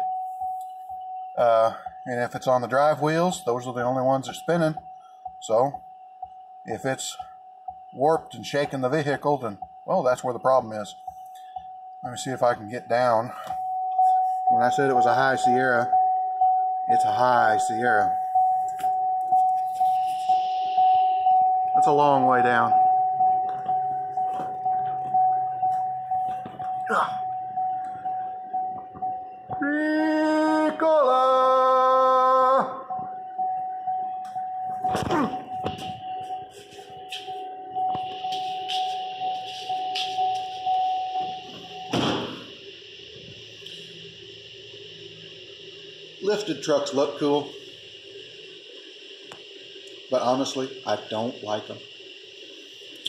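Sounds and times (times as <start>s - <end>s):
truck warning chime: 0.0s - 42.4s
truck door slamming: 41.9s - 42.5s.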